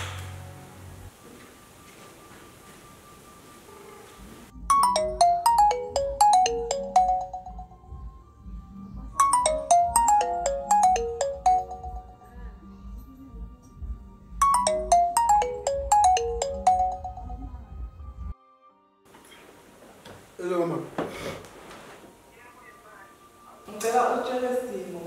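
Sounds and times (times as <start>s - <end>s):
mobile phone ringtone: 4.6s - 8.0s, 9.2s - 12.3s, 14.4s - 17.6s.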